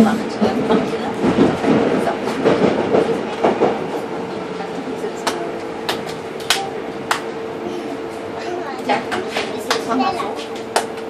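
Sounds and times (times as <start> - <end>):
subway car rail rumble: 0.0 - 11.0.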